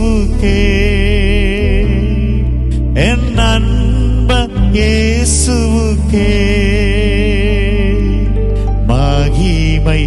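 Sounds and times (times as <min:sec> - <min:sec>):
man singing into a microphone: 0:00.0 - 0:10.0
sustained low accompaniment: 0:00.0 - 0:10.0.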